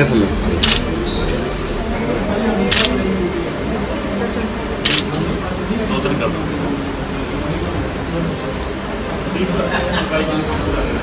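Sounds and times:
murmuring voices: 0.0 - 11.0
camera shutter clicks: 0.6 - 0.9, 2.7 - 3.0, 4.8 - 5.2.

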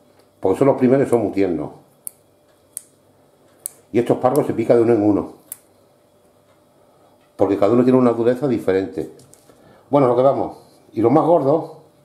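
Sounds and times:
asparagus stalks snapping: 5.5 - 5.7.

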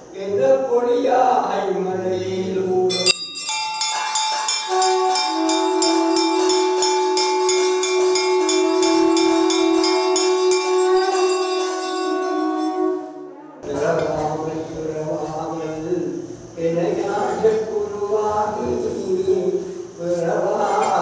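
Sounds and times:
chanting: 0.0 - 21.0
bells ringing: 2.9 - 13.0.

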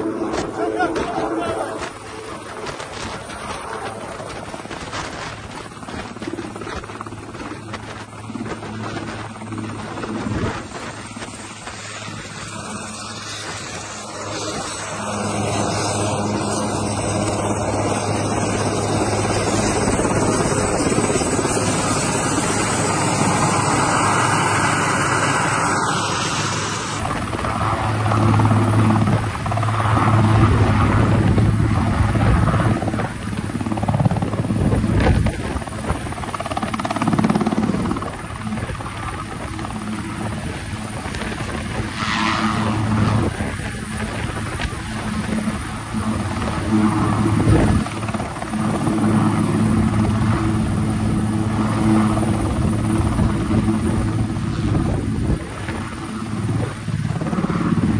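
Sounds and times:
helicopter turbine and rotor: 0.0 - 57.9
rotor downwash gusting: 0.0 - 57.9.

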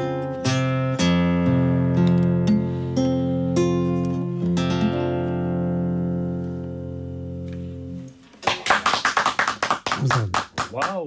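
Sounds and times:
acoustic guitar chord ringing: 0.0 - 8.0
hand clapping: 8.4 - 11.0.

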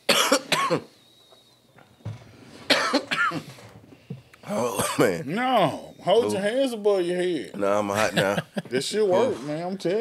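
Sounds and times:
man coughing hard: 0.1 - 0.9, 2.7 - 3.5, 4.5 - 5.2.

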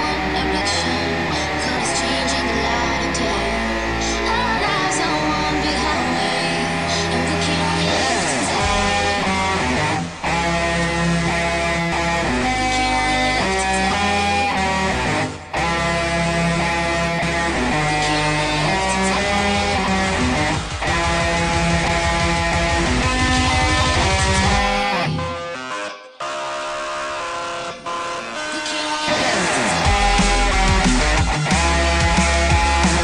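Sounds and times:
backing track with deep bass: 0.0 - 25.4, 27.8 - 33.0
electric guitar riffs: 0.0 - 33.0.

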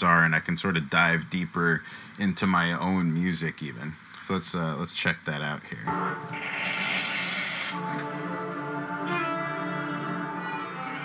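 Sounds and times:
hiss: 6.5 - 7.8
bowed viola long notes: 7.7 - 11.0.

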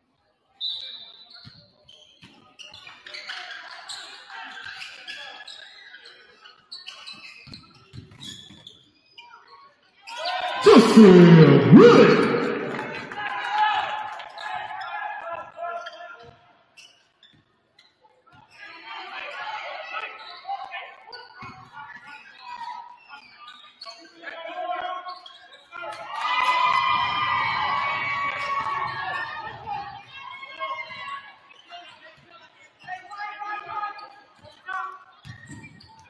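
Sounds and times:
sneaker squeaks: 6.7 - 8.8, 35.2 - 36.0
crowd shouting: 10.6 - 13.3
scattered voices: 10.6 - 13.3.

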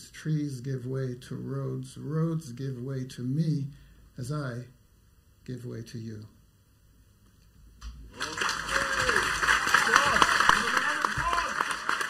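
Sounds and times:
audience applause: 8.1 - 12.0
audience cheering: 8.1 - 12.0.

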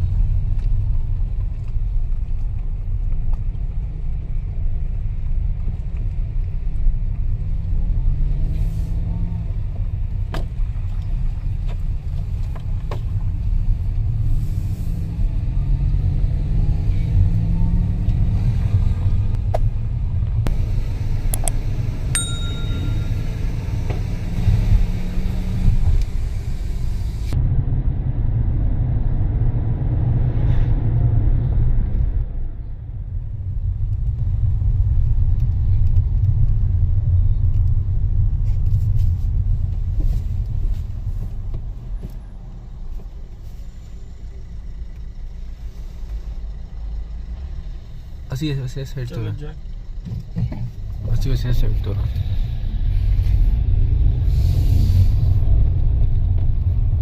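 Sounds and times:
car engine and road rumble: 0.0 - 57.0
short ding: 22.2 - 23.6.

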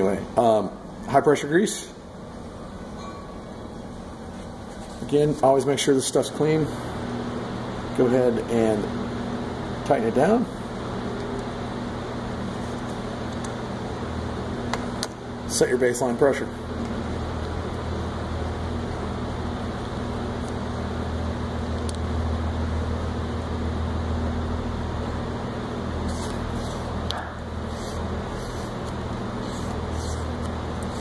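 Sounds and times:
low machine hum: 0.0 - 31.0.

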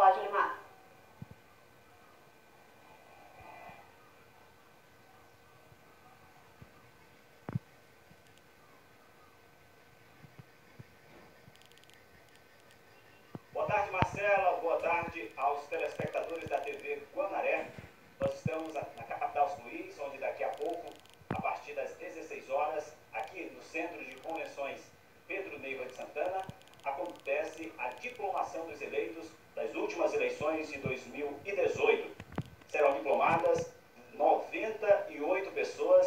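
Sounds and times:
thin steady electronic hum: 0.0 - 36.0
man talking: 13.6 - 36.0.

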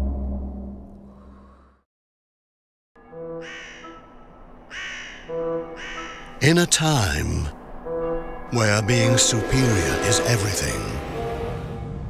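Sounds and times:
quiet sustained music: 3.0 - 12.0
crow cawing: 3.4 - 6.4.

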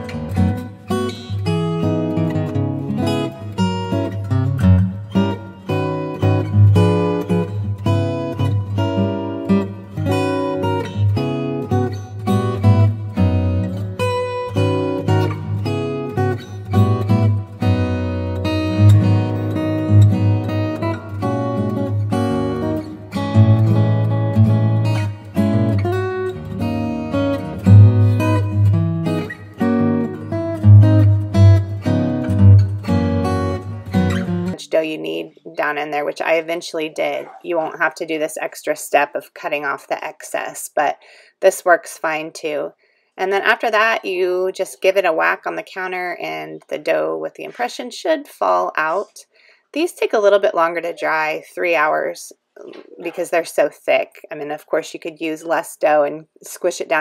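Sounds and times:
acoustic guitar plucked and strummed: 0.0 - 49.2, 52.6 - 57.0.

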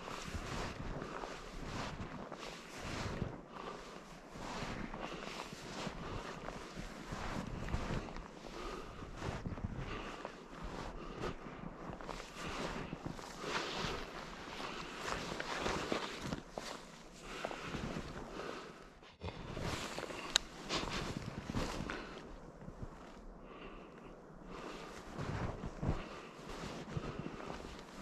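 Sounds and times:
footsteps crunching through snow: 0.0 - 23.8, 24.5 - 28.0
rustling of gear: 4.1 - 23.3.

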